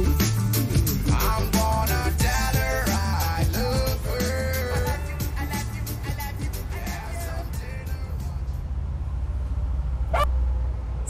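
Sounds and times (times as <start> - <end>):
reggae dancehall music: 0.0 - 8.6
steady low rumble: 0.0 - 11.0.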